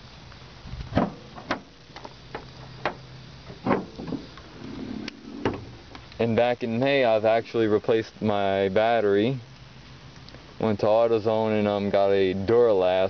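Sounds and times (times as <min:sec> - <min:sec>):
steady low hum: 0:00.0 - 0:13.0
hood latch clicks and clunks: 0:00.9 - 0:04.3, 0:05.4 - 0:05.7.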